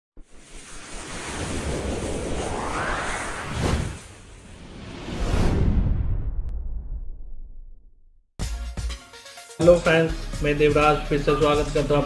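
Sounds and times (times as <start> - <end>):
rushing whoosh: 0.2 - 7.5.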